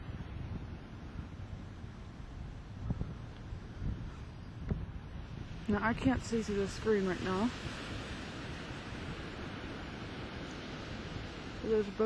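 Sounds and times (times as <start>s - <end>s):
ocean surf on beach: 0.0s - 12.0s
wind rumbling on microphone: 0.0s - 12.0s.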